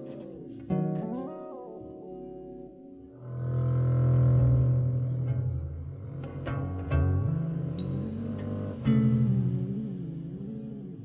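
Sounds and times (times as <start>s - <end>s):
double bass bowed low note: 3.0s - 11.0s.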